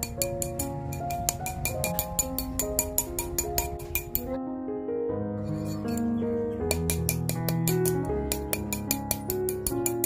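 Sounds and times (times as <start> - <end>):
hammer tapping metal ring: 0.0 - 4.3, 6.7 - 10.0
background music with melody: 0.0 - 10.0.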